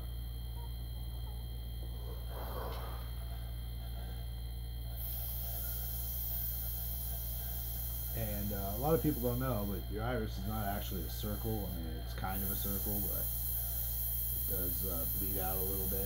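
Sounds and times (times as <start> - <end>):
steady low hum: 0.0 - 16.0
airbrush air hiss: 2.0 - 3.1, 4.8 - 16.0.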